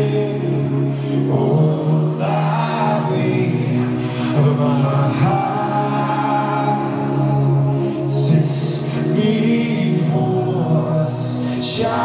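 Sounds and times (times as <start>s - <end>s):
live band sustained low notes: 0.0s - 12.0s.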